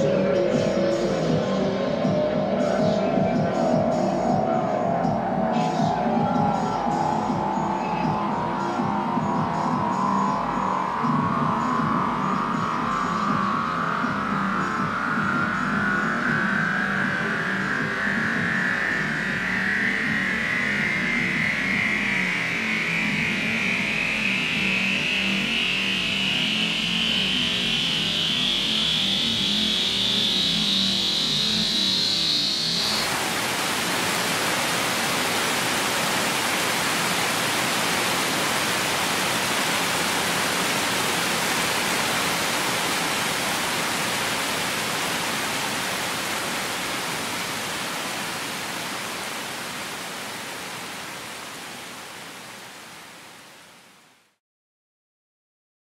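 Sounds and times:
rising electronic tone: 0.0 - 51.0
steady rushing hiss: 28.9 - 53.9.

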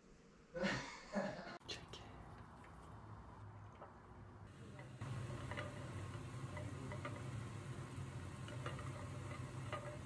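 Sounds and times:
steady low hum: 1.7 - 10.0
mushrooms frying in a pan: 4.5 - 10.0.

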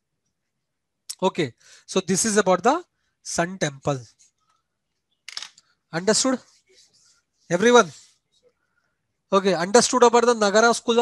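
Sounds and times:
man lecturing: 1.1 - 4.4, 5.9 - 6.8, 7.4 - 8.2, 9.3 - 11.0.

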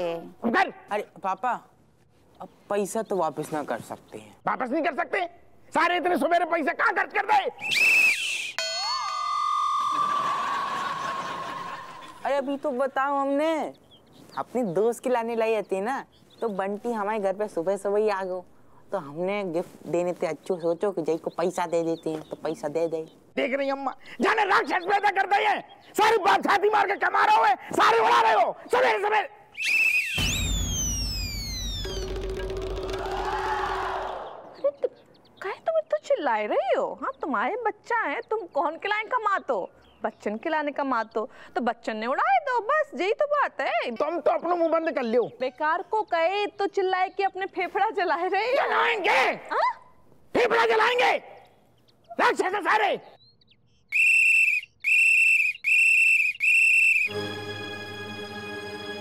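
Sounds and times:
woman finger whistling: 7.6 - 8.6, 29.6 - 31.6
short shrill whistle: 7.6 - 9.8, 29.6 - 32.2, 53.9 - 57.2
rising-and-falling tone: 30.0 - 34.1
music: 57.1 - 59.0.

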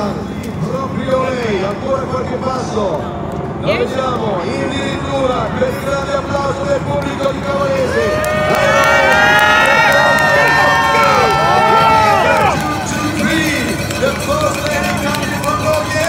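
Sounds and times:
spectators cheering and shouting: 7.5 - 16.0.

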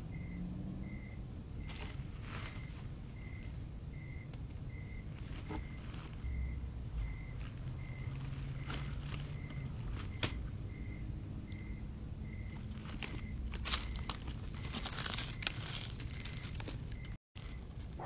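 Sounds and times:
animal walking over dry leaves: 1.6 - 3.6, 5.0 - 10.5, 12.2 - 18.0.

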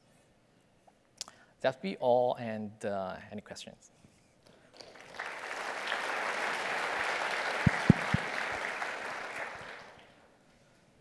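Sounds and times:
audience applauding: 4.8 - 10.2.

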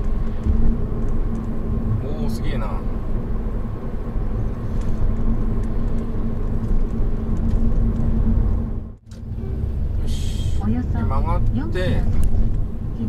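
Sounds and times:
engine and road noise rumble: 0.0 - 13.0.

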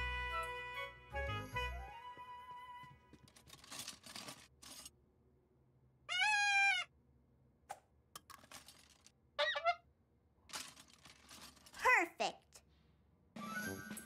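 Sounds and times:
toy horn note: 0.0 - 2.4
plastic toys clattering: 3.1 - 5.0, 8.2 - 9.2, 10.5 - 12.0.

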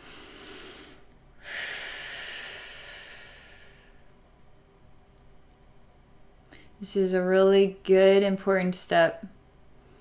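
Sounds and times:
woman breathing deeply: 0.0 - 4.2.

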